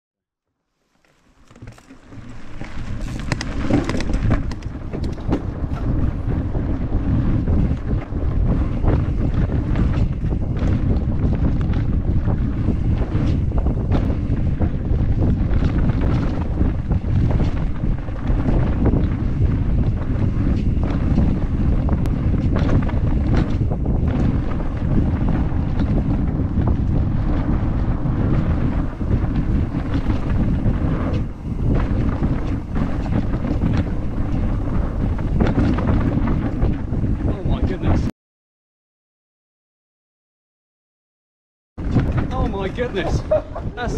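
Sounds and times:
bike rattling over ground: 0.9 - 38.1, 41.8 - 43.9
wind buffeting microphone: 1.3 - 38.1, 41.8 - 43.9.

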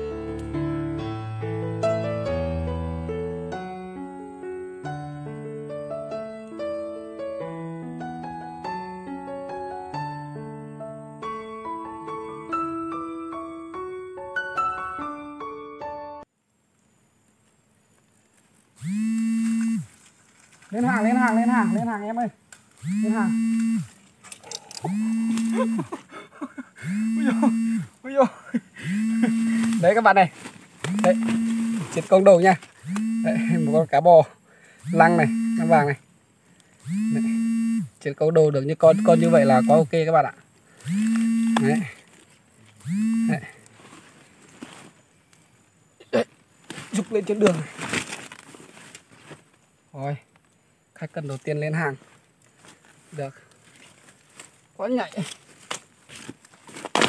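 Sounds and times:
faint outdoor background: 0.0 - 57.0
phone vibrating buzz: 18.8 - 20.0, 20.7 - 22.2, 22.8 - 24.0, 24.6 - 26.0, 26.8 - 30.2, 30.8 - 34.0, 34.8 - 36.0, 36.8 - 38.2, 38.8 - 40.0, 40.7 - 42.1, 42.7 - 43.7
man holding long flat syllables: 24.5 - 30.1, 30.9 - 33.9.

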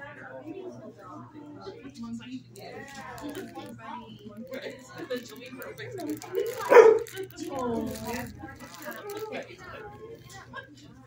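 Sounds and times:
dog barking: 6.6 - 7.1.

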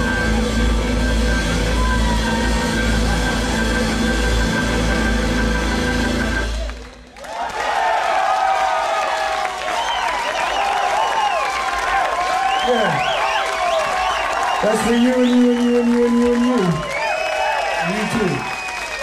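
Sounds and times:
crowd cheering and applauding: 0.0 - 19.0.

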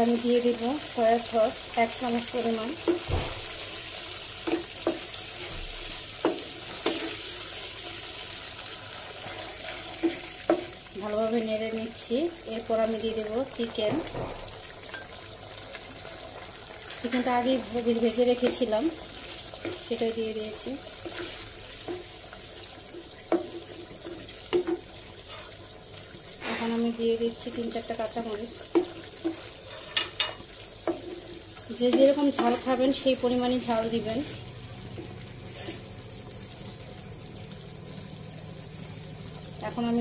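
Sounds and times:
sauce sizzling in a frying pan: 0.0 - 40.0
wooden spatula knocking on pan: 2.8 - 3.4, 4.4 - 5.1, 6.2 - 7.0
spatula scraping a pan: 2.8 - 10.8, 20.9 - 27.8, 28.6 - 32.8.

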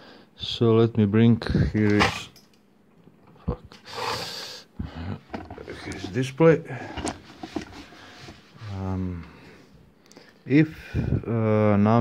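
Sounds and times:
man muttering: 4.8 - 5.7.

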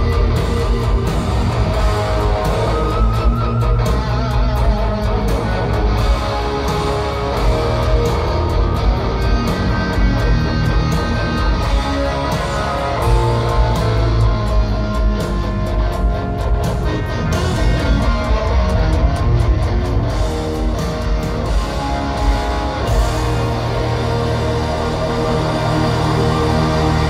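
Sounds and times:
bass and drums: 0.0 - 27.0
electric guitar solo: 0.0 - 27.0.

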